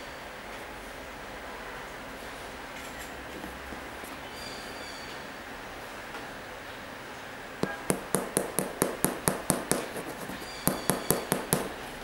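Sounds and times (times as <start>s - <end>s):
fingertips tapping on sneaker: 7.6s - 11.8s.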